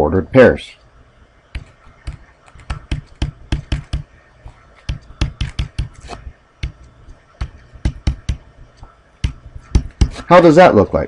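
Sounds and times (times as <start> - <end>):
stylus tapping on tablet screen: 1.5 - 10.3.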